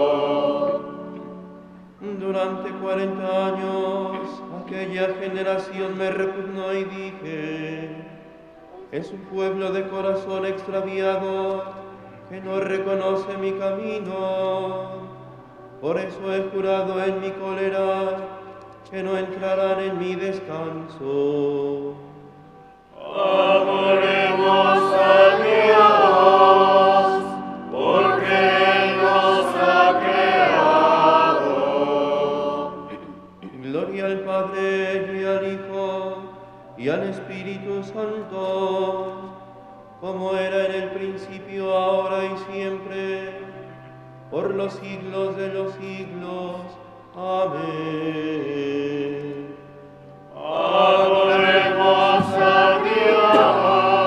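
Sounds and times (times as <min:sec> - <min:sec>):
sung liturgical chant: 0:00.0 - 0:54.0.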